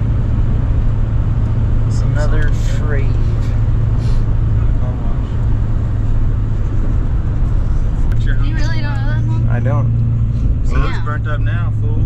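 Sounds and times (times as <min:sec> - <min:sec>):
vehicle road and engine drone: 0:00.0 - 0:12.0
voices: 0:01.9 - 0:03.6, 0:08.0 - 0:09.8, 0:10.6 - 0:12.0.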